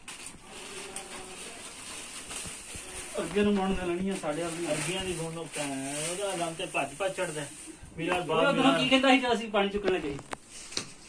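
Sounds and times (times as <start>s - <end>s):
faint steady high hiss: 0.0s - 11.0s.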